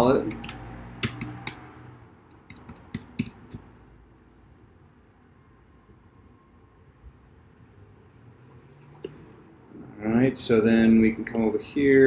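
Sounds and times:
keyboard typing clicks: 0.2 - 1.6, 2.3 - 3.6.

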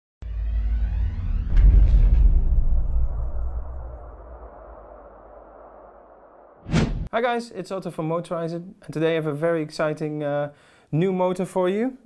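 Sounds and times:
deep rumble: 0.2 - 7.1
whoosh: 0.2 - 7.1.

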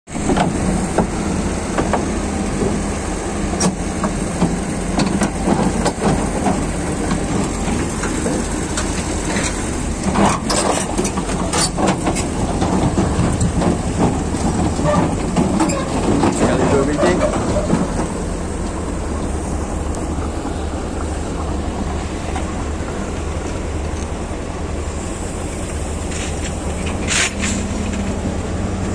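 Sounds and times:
diesel engine rumbling: 0.1 - 28.9
metallic clanks and knocks: 3.6 - 18.8.

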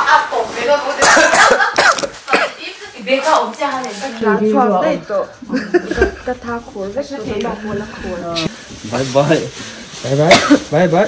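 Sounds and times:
people talking: 0.0 - 1.7, 2.3 - 11.0
coughing: 1.0 - 2.7, 10.3 - 10.7.

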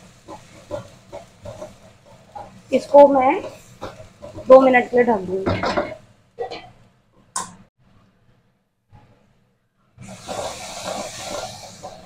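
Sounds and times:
food sizzling in hot oil: 0.0 - 6.8, 10.0 - 12.0.

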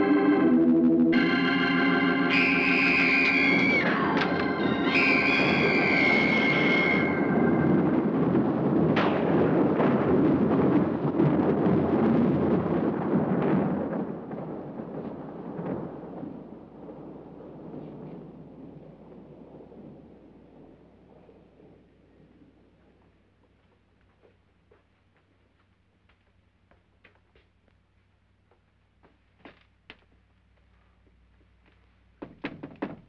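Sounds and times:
high organ note: 0.0 - 7.8
loud crackling rumble: 0.0 - 23.9.

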